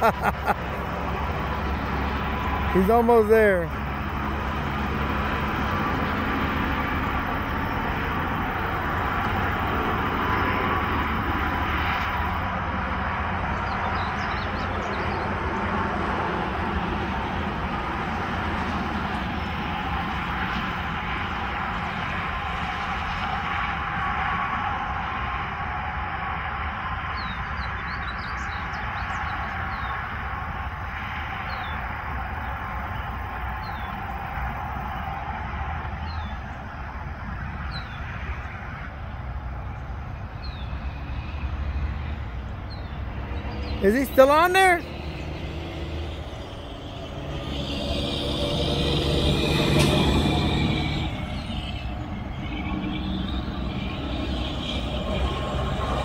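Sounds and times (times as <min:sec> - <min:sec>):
distant road traffic rumble: 0:00.0 - 0:56.0.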